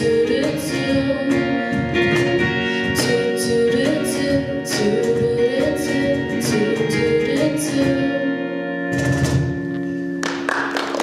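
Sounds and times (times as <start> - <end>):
audience applause: 10.2 - 11.0.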